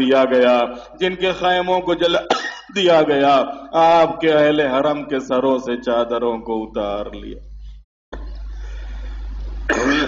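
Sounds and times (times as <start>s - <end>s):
low electrical hum: 0.0s - 10.0s
man coughing: 2.2s - 2.8s, 9.7s - 10.0s.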